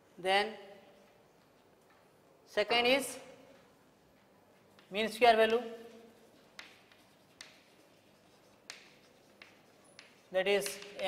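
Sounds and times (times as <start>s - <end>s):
chalk tapping on chalkboard: 4.2s - 11.0s.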